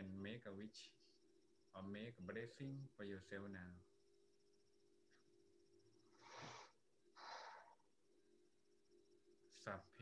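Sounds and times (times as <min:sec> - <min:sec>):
person breathing close to microphone: 0:06.1 - 0:07.8.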